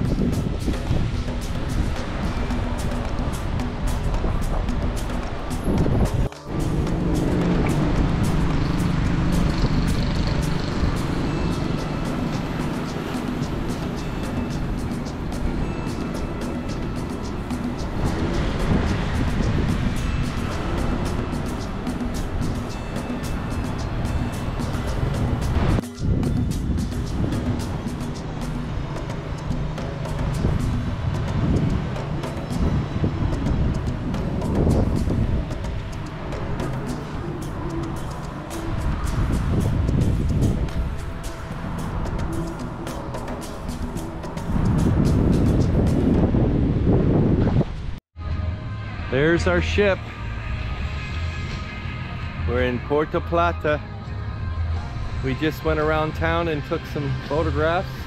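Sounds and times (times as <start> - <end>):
background music with low notes: 0.0 - 47.6, 48.2 - 58.0.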